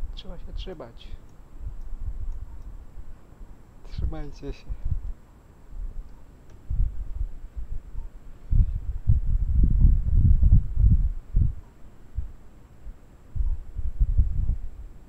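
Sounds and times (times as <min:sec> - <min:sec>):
microphone handling thumps: 0:05.8 - 0:11.6, 0:13.4 - 0:14.7.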